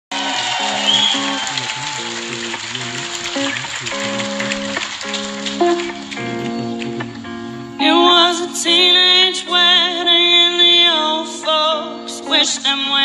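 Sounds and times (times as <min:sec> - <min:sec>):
live band playing: 0:00.2 - 0:12.6.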